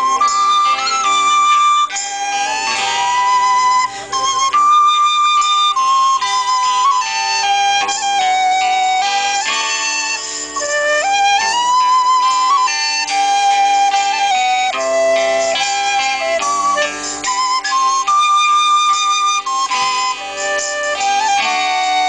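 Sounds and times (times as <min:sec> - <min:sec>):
live band instrumental over speakers: 0:00.0 - 0:22.0.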